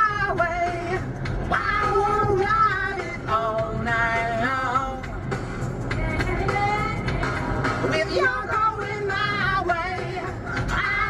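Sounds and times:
high singing voice: 0:06.2 - 0:10.2.

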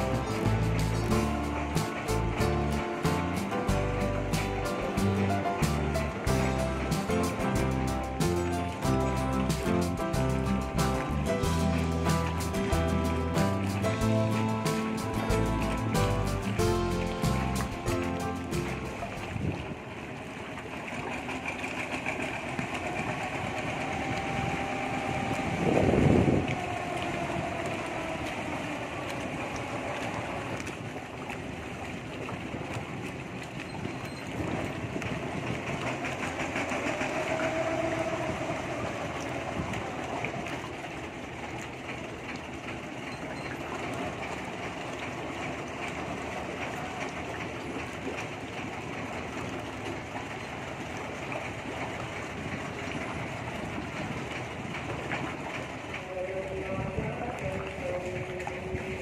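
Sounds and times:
boat engine running: 0:00.0 - 0:59.0
river water wash: 0:00.0 - 0:59.0
wind: 0:00.0 - 0:59.0.

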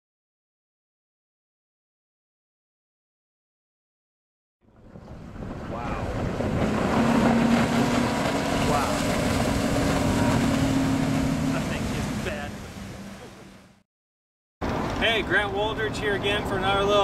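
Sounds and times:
motorboat engine drone: 0:04.6 - 0:13.8
rushing water: 0:04.7 - 0:13.8
wind on microphone: 0:04.8 - 0:13.3.

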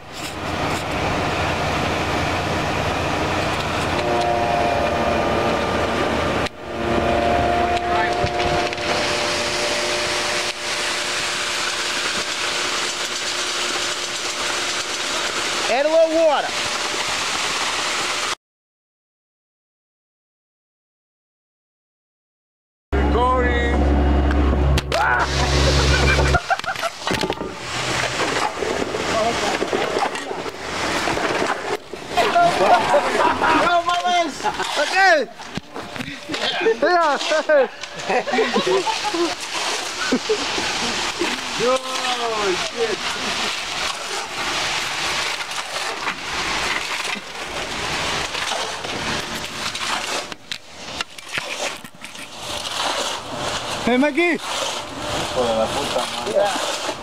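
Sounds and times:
rake scraping concrete: 0:00.0 - 0:01.0, 0:06.8 - 0:17.8, 0:24.8 - 0:57.0
machine engine running: 0:00.4 - 0:15.8, 0:23.0 - 0:34.9, 0:39.4 - 0:50.8
wet concrete sliding down chute: 0:07.7 - 0:18.4, 0:24.9 - 0:57.0
people talking: 0:15.6 - 0:16.6, 0:23.0 - 0:23.8, 0:24.9 - 0:26.4, 0:29.1 - 0:29.6, 0:32.2 - 0:35.4, 0:36.0 - 0:39.4, 0:40.1 - 0:43.5, 0:53.8 - 0:54.4, 0:55.3 - 0:56.7
rough noisy background: 0:23.0 - 0:57.0.

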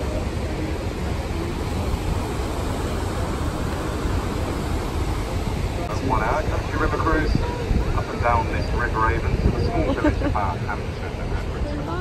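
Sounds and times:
steady low rumble: 0:00.0 - 0:12.0
indistinct voices talking: 0:05.2 - 0:12.0.

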